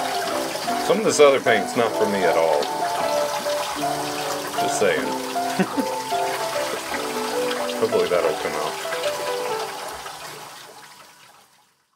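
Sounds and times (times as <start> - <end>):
tap water running into sink: 0.0 - 11.9.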